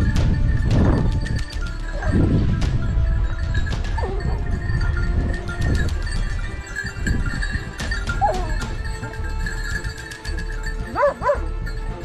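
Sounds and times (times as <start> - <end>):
dog yelping: 8.2 - 8.6, 11.0 - 11.4.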